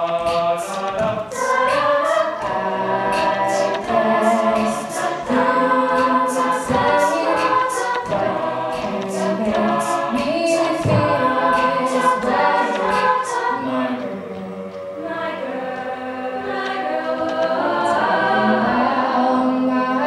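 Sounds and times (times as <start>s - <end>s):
vocal beatbox rhythm: 0.0s - 14.8s
a cappella group singing in harmony: 0.0s - 20.0s.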